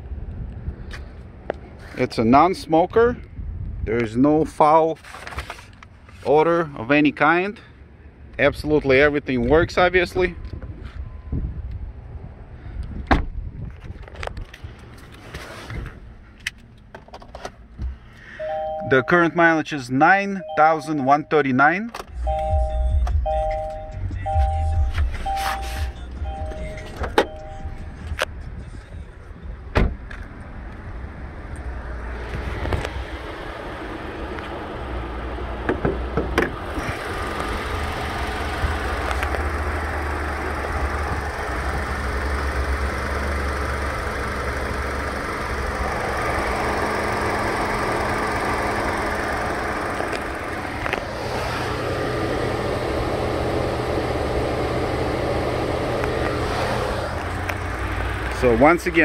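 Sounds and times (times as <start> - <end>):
two-tone car chime: 18.3 - 19.6, 20.2 - 28.1
car engine idling: 22.1 - 59.0.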